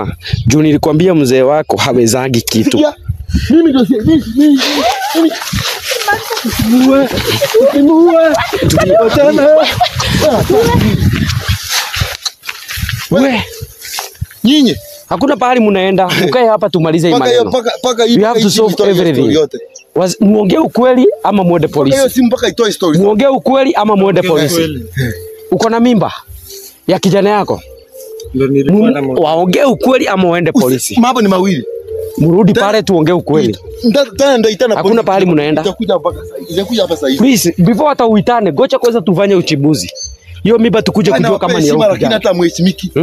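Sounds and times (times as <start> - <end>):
people shouting and yelling: 3.5 - 12.2.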